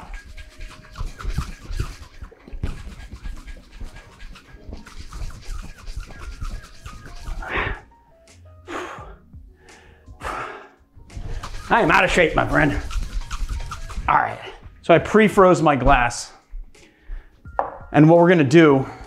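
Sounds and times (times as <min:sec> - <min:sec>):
cocktail shaker shaken hard: 0:00.0 - 0:07.5, 0:11.1 - 0:14.6
heavy out-of-breath exhalations: 0:07.4 - 0:08.0, 0:08.7 - 0:10.9, 0:16.8 - 0:17.5.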